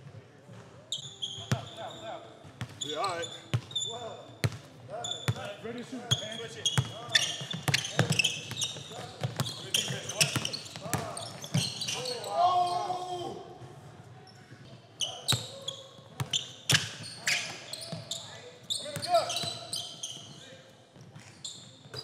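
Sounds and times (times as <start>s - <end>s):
sneakers squeaking: 0.9s - 13.4s, 14.3s - 22.0s.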